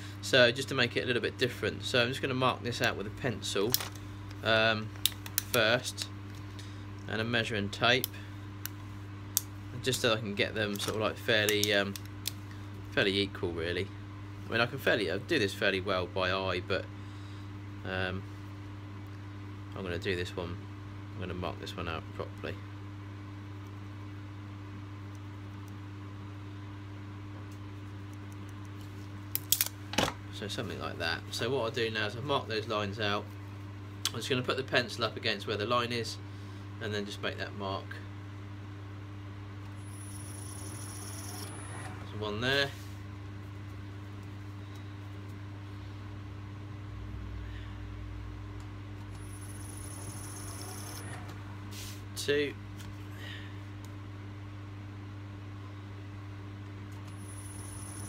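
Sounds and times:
low workshop hum: 0:00.0 - 0:58.0
faint high whine: 0:39.7 - 0:42.9, 0:49.1 - 0:51.4, 0:57.1 - 0:58.0.

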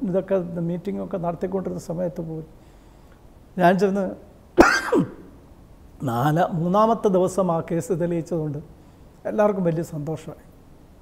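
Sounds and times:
man clearing throat: 0:04.6 - 0:05.3.

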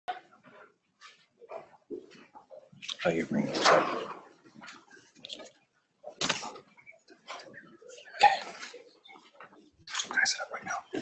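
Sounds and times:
broken snatches of people talking: 0:09.9 - 0:11.0.

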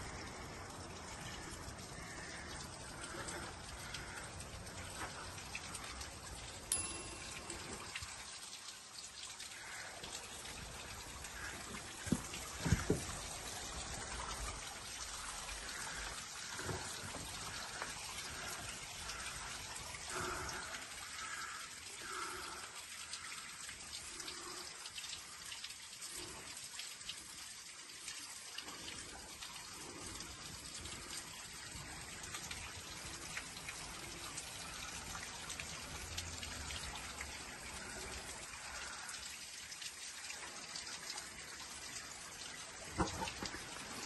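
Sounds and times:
water dripping and trickling: 0:00.0 - 0:44.0.

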